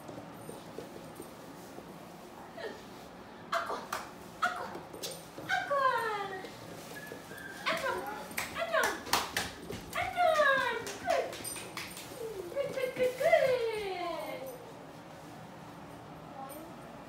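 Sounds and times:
puppy whining: 6.8s - 8.4s.

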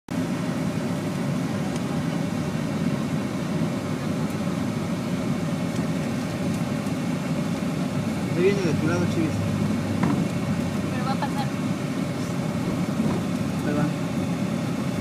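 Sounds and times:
engine and road noise in car: 0.1s - 15.0s.

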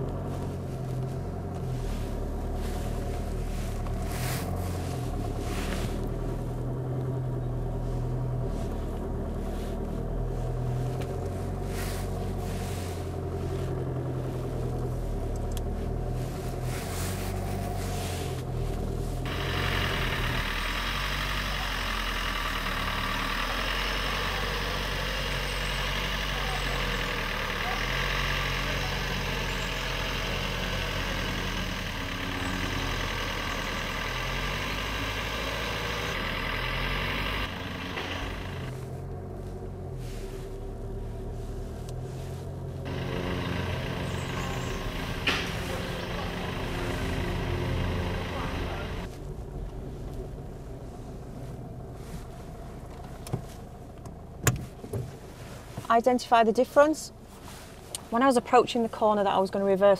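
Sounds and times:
car engine running at low revs: 0.0s - 59.9s.

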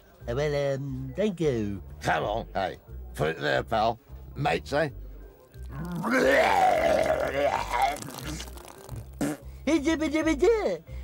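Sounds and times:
low background music: 0.0s - 11.0s
man vomiting: 5.9s - 8.4s.

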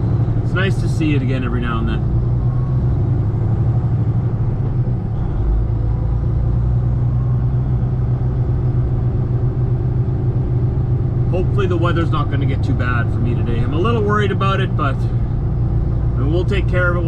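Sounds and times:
road noise: 0.0s - 17.0s
truck diesel engine drone: 0.0s - 17.0s.

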